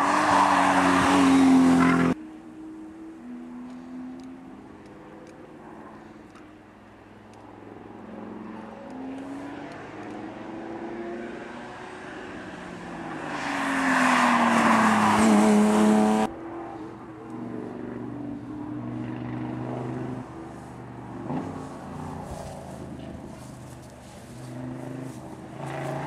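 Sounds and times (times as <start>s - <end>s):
rally car engine passing: 0.0s - 5.9s, 7.6s - 26.0s
distant car engine approaching: 0.0s - 26.0s.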